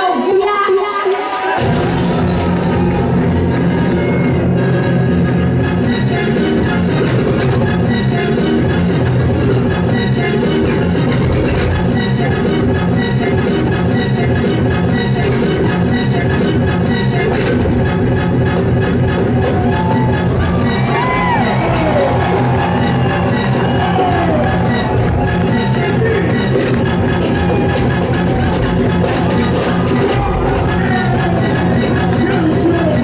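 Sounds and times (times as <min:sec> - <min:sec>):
driving electronic beat: 0:01.6 - 0:33.0.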